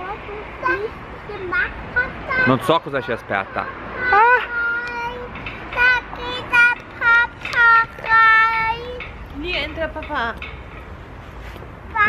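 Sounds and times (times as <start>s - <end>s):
child singing a chant: 0.0s - 2.6s, 4.0s - 9.0s.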